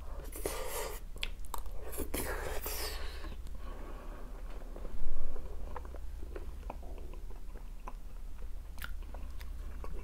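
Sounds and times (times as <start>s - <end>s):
quiet chewing: 5.6s - 10.0s.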